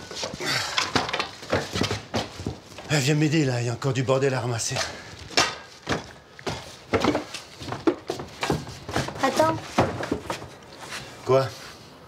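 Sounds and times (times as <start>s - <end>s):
objects knocking on hard surfaces: 5.3s - 10.5s.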